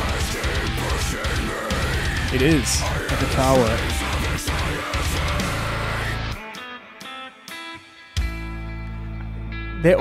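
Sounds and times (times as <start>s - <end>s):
steady bass: 0.0s - 6.4s
heavy metal band playing: 0.0s - 6.6s.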